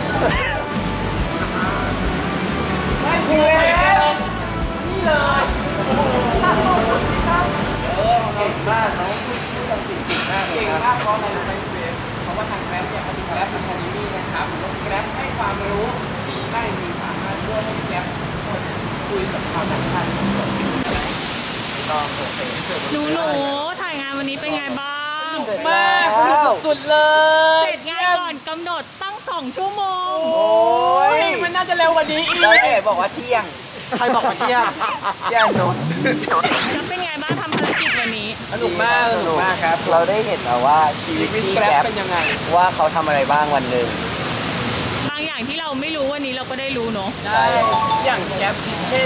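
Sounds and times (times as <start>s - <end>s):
outdoor background hiss: 0.0s - 49.0s
voices talking: 22.2s - 43.7s, 46.4s - 49.0s
man talking: 32.2s - 36.3s, 38.5s - 44.0s, 47.3s - 48.9s
loud rushing noise: 35.4s - 38.5s.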